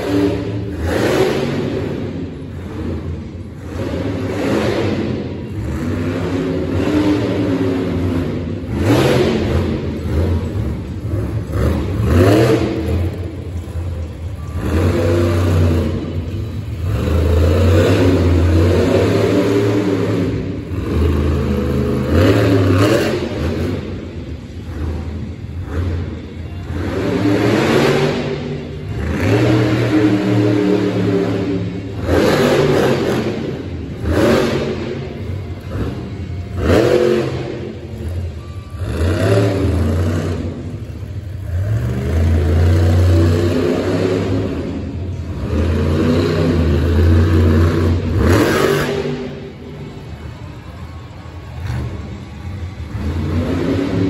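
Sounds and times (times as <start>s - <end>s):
monster truck engine revving: 0.0s - 54.0s.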